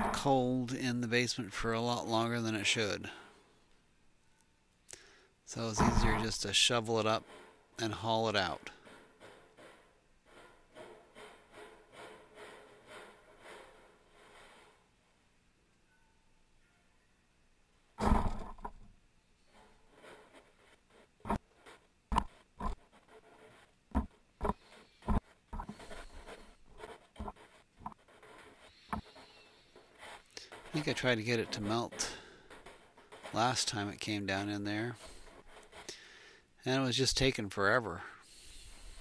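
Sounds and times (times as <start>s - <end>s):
shovel scraping snow on concrete: 30.0s - 32.4s.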